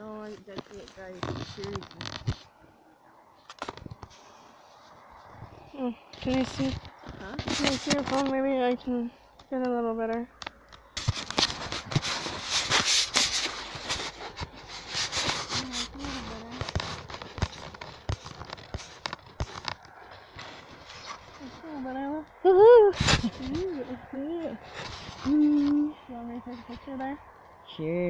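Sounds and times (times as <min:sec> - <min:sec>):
rustling of brush: 0:00.0 - 0:28.0
wordless vocal murmurs: 0:21.4 - 0:27.2.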